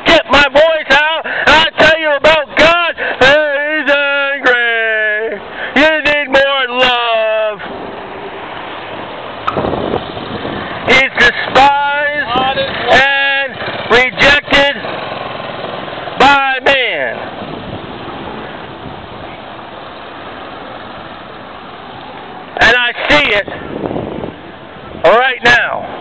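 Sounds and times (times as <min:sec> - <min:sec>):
person shouting: 0:00.0 - 0:07.6
street background hum: 0:00.0 - 0:26.0.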